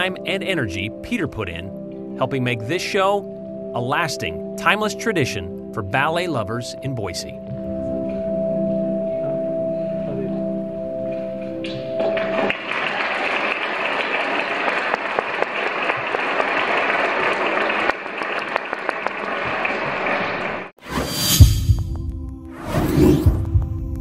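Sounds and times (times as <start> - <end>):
audience applauding: 11.9 - 20.7.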